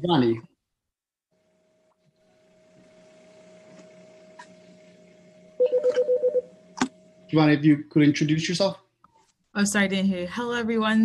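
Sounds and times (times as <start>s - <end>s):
faint electrical hum: 0.0s - 0.6s, 1.3s - 11.0s.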